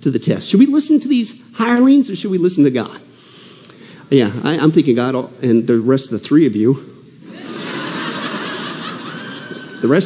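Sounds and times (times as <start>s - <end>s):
audience laughing: 7.3s - 10.0s.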